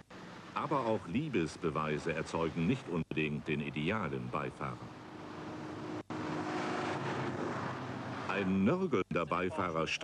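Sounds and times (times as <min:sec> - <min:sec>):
car driving past: 0:04.6 - 0:08.7.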